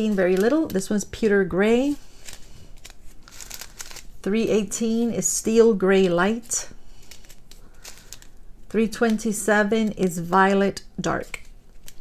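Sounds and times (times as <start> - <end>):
plastic bags crinkling: 1.9 - 4.2, 6.9 - 9.2, 11.3 - 12.0.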